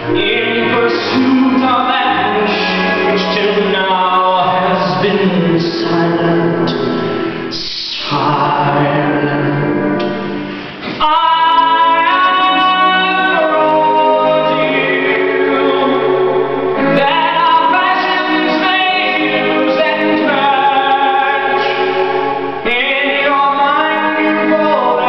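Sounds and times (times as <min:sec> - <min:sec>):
man singing show tune: 0:00.0 - 0:10.1, 0:10.8 - 0:25.0
orchestral backing track: 0:00.0 - 0:25.0.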